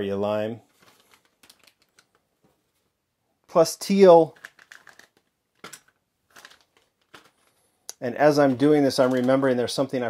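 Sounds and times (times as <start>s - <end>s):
plastic bags crinkling: 0.7s - 2.3s, 4.4s - 7.7s, 8.3s - 9.6s.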